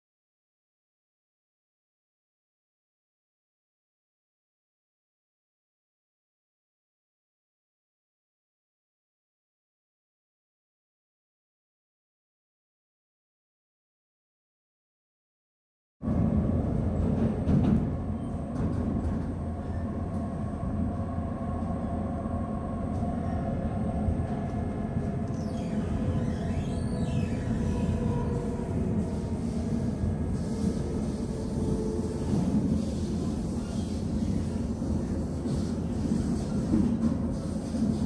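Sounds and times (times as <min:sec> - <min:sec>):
train rumble inside carriage: 0:16.0 - 0:38.0.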